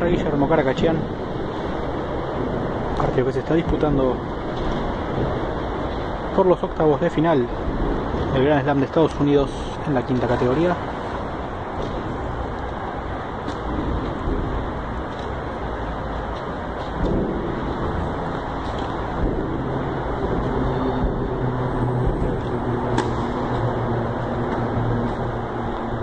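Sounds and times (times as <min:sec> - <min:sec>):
low rumble and hum: 0:00.0 - 0:26.0
racket hitting tennis ball: 0:22.9 - 0:23.7.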